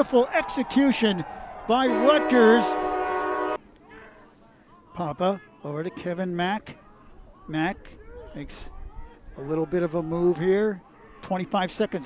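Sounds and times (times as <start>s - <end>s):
stadium goal horn blast: 1.8s - 3.6s.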